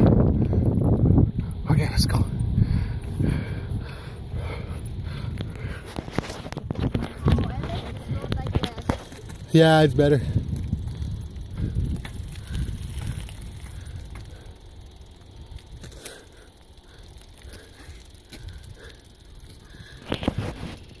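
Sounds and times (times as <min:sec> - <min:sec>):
wind rumble on microphone: 0:00.0 - 0:16.0
bicycle tyres rolling on gravel: 0:00.0 - 0:21.0.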